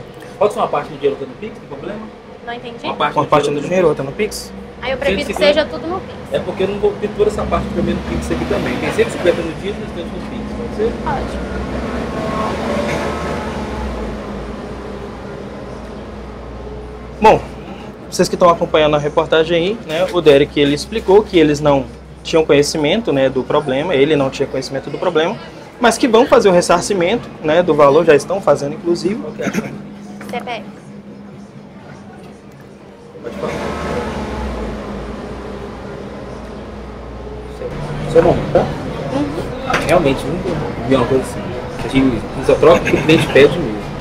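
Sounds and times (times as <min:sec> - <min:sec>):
vehicle engine rumble: 0:00.0 - 0:44.0.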